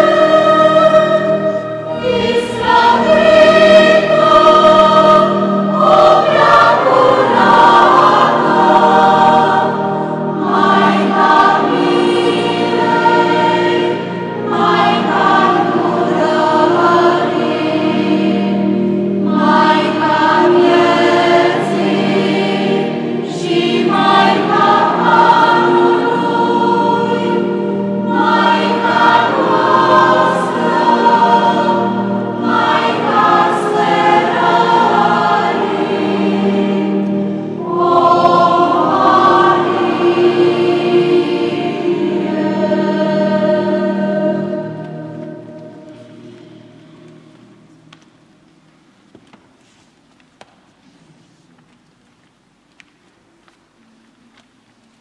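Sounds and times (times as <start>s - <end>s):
church choir singing a hymn: 0.0s - 48.2s.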